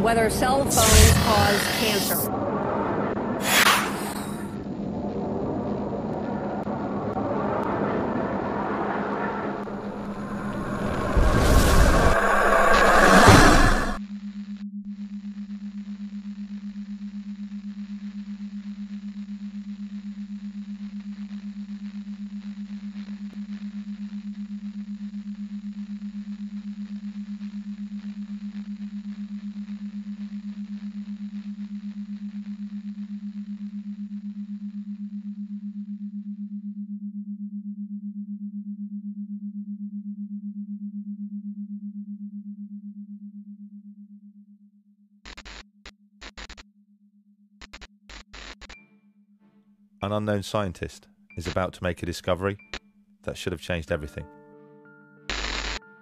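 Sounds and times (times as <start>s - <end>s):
low electronic hum: 0.0s - 40.6s.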